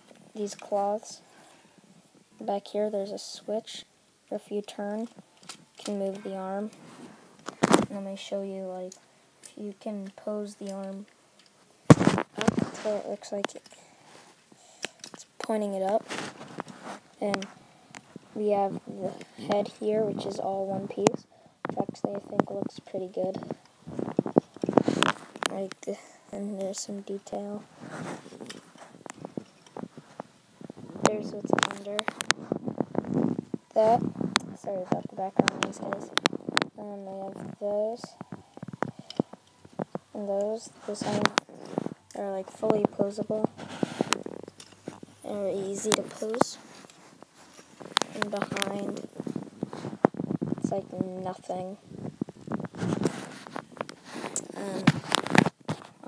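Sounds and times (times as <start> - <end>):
cloth rustle: 4.8 - 56.0.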